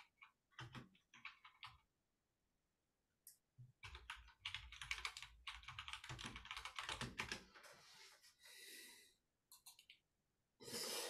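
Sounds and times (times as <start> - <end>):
faint computer keyboard typing: 0.0 - 1.9, 3.8 - 7.5, 9.5 - 10.0.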